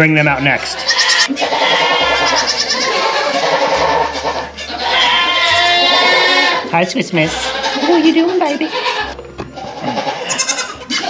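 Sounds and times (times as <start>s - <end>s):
goats bleating: 0.3s - 11.0s.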